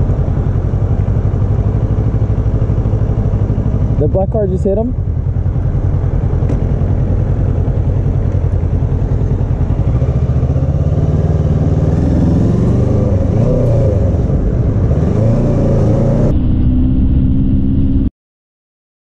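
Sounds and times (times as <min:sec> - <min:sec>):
motorcycle engine running: 0:00.0 - 0:17.9.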